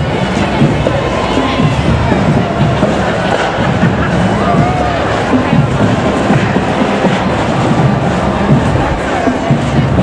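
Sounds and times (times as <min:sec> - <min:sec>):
crowd and street noise: 0:00.0 - 0:10.0
marching drumline playing: 0:00.0 - 0:10.0.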